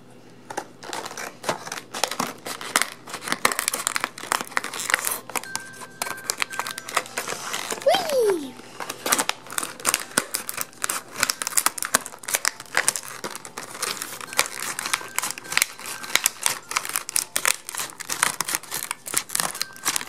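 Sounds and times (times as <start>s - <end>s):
plastic packaging crinkling: 0.5s - 20.0s.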